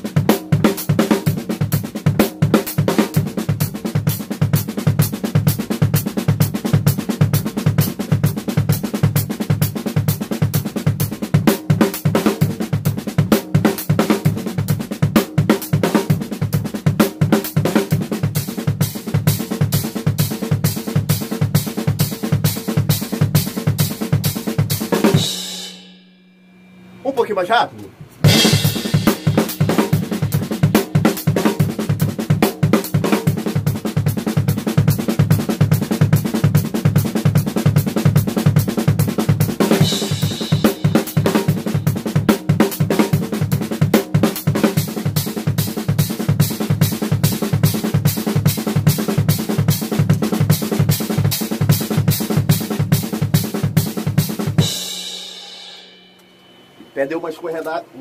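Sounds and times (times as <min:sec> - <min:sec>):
fast drum kit playing: 0:00.0 - 0:26.1, 0:27.0 - 0:56.2, 0:56.9 - 0:57.9.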